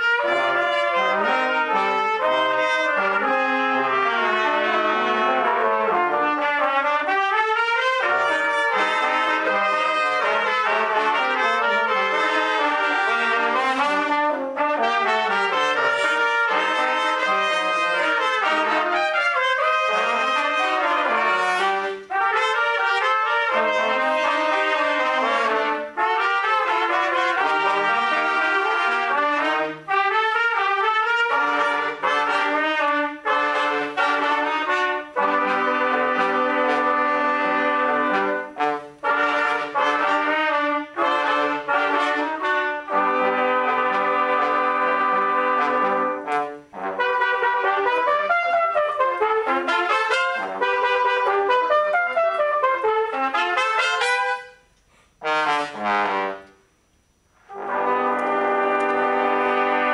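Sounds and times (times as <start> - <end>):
trumpet ensemble playing: 0.0 - 59.9.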